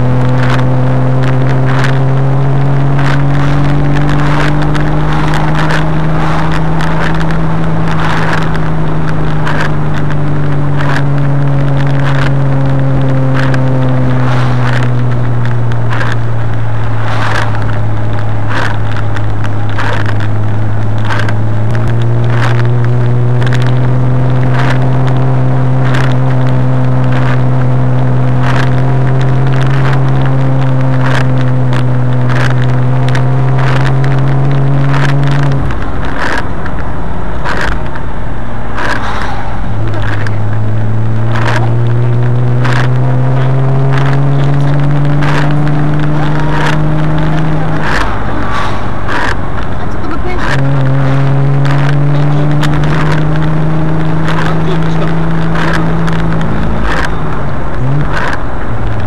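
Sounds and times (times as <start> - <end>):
car engine while driving: 0.0 - 59.0
sharp clicks and rattles: 0.0 - 59.0.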